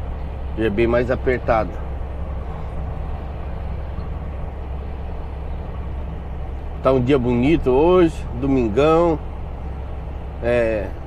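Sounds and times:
road noise: 0.0 - 11.0
truck diesel engine under load: 0.0 - 11.0.

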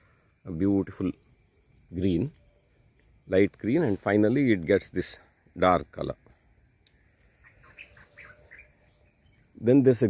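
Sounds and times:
faint bird chirps: 0.0 - 10.0
insects droning: 0.0 - 10.0.

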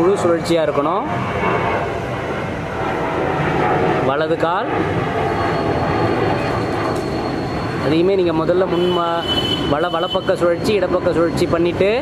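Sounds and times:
steady rumbling: 0.0 - 12.0.

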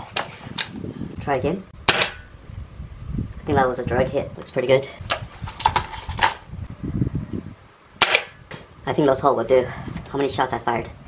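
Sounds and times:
air rifle shot: 1.8 - 2.3, 8.0 - 8.4.

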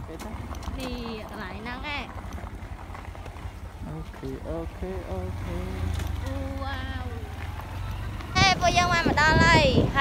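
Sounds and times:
vehicle rumbling: 0.0 - 10.0
wind on microphone: 8.3 - 10.0.

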